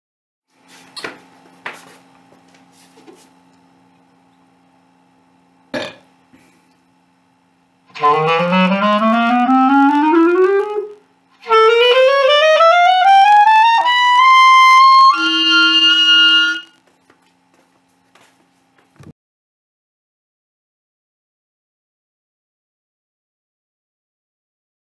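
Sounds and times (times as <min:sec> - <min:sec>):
clarinet burp: 0:05.7 - 0:06.1
clarinet note: 0:07.9 - 0:16.8.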